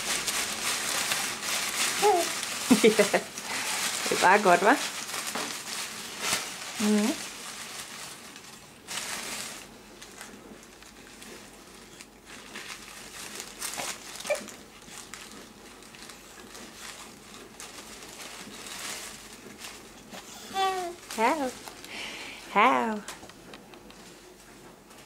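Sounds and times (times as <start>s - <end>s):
paper rustling and crinkling: 0.0s - 22.2s.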